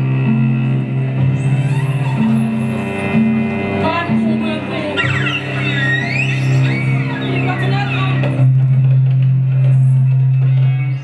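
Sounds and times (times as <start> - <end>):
gliding melodic line: 0.3 - 8.4.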